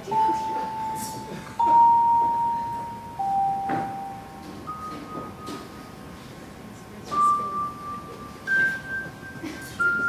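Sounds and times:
bell-like instrument notes: 0.0 - 5.9.

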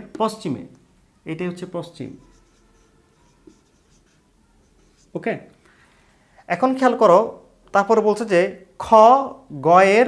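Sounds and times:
marker pen writing on whiteboard: 2.1 - 5.2.

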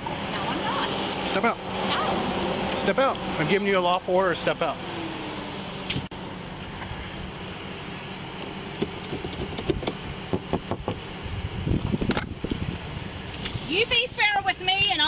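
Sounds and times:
pickup engine idling: 0.0 - 15.0
power window whirring: 4.4 - 12.7.

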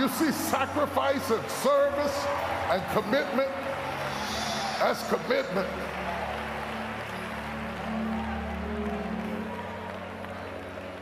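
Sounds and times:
congregation applause: 0.0 - 11.0
crowd noise: 0.0 - 11.0.

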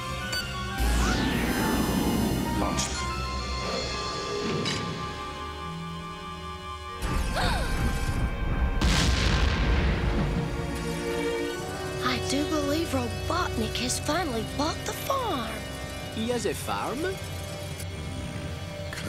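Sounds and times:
cartoon background music: 0.0 - 19.0
explosion booms: 8.1 - 11.0.

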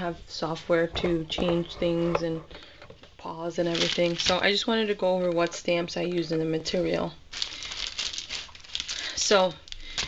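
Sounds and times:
paper rustling and crinkling: 3.6 - 4.6, 7.3 - 10.0.

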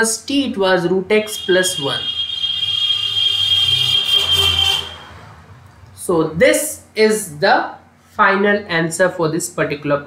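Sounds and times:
high-pitched whine: 1.2 - 5.7.

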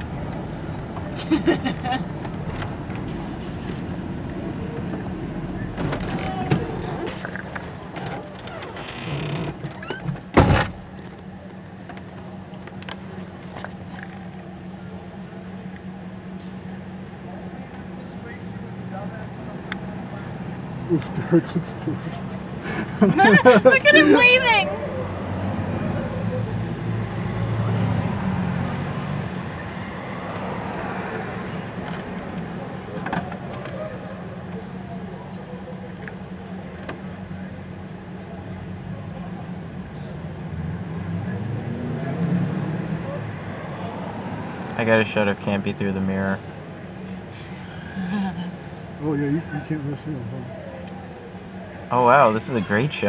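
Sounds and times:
car engine rumble: 0.0 - 53.0
road noise: 0.0 - 53.0
street traffic noise: 0.0 - 53.0.

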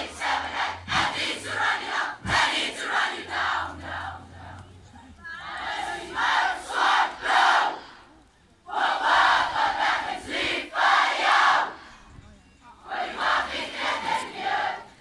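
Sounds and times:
children chanting a war cry: 0.0 - 4.3, 5.4 - 7.8, 13.0 - 14.9.

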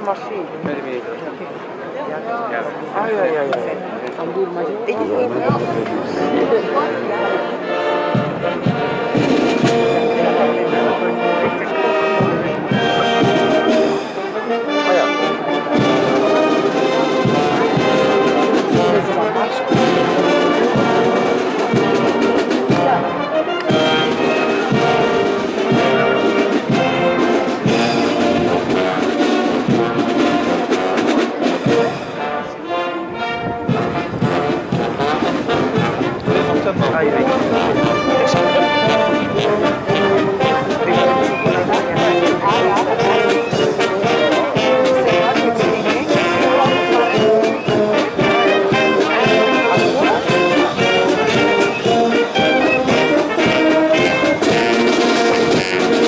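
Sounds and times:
brass instruments sustained notes: 4.6 - 56.0
snare drums beating: 8.1 - 10.4, 12.2 - 14.0, 15.7 - 32.2, 33.7 - 56.0.

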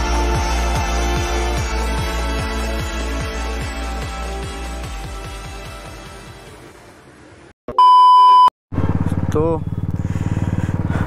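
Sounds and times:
background music: 0.0 - 7.3
electronic beep: 7.7 - 8.5
motorcycle engine running: 8.7 - 11.0.

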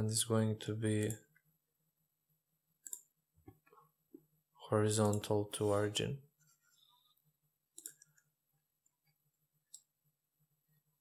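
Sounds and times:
computer mouse clicks: 2.8 - 3.6, 7.7 - 8.3, 9.0 - 9.9.

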